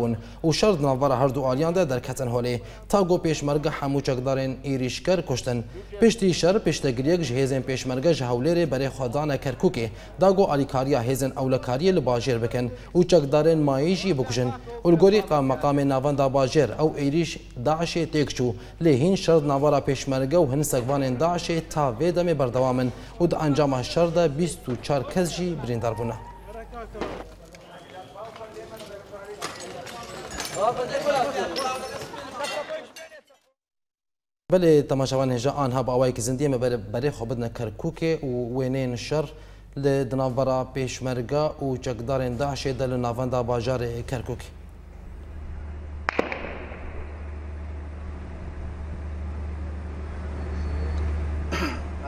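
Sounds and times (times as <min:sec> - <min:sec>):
men's voices talking faintly: 0:18.9 - 0:33.2
low hum: 0:44.6 - 0:52.0
noisy burst: 0:45.2 - 0:49.9
sharp echoing cracks: 0:46.0 - 0:47.6.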